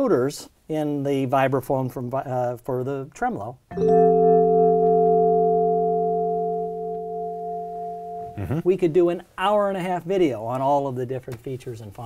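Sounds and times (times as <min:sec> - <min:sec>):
vibraphone chord ringing: 0:03.7 - 0:08.4.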